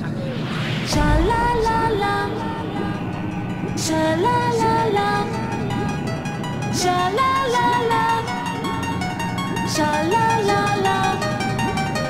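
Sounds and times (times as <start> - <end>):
synth riff: 0.0 - 12.0.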